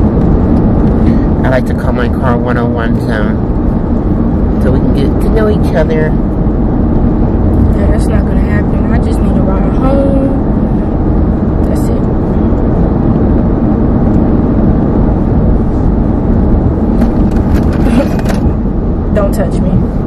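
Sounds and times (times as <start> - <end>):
car road and engine rumble: 0.0 - 20.0
people talking: 1.4 - 3.4, 4.6 - 6.2, 7.7 - 10.4, 11.6 - 12.1, 19.1 - 19.9.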